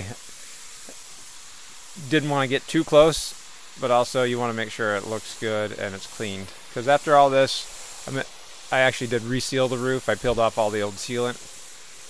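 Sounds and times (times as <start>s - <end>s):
pressure washer spraying water: 0.0s - 12.0s.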